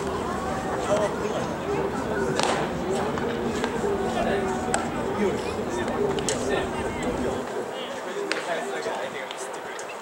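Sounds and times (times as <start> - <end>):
background voices: 0.0 - 7.9.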